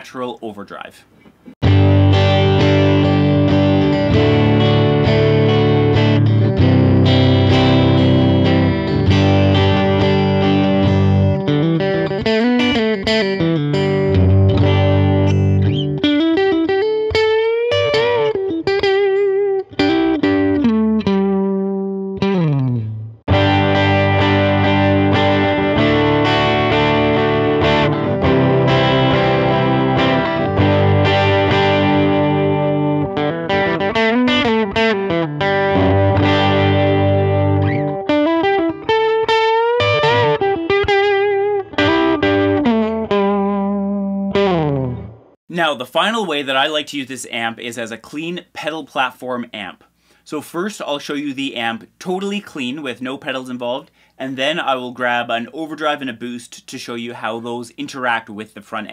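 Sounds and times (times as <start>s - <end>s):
electric guitar with string bends: 1.2s - 46.8s.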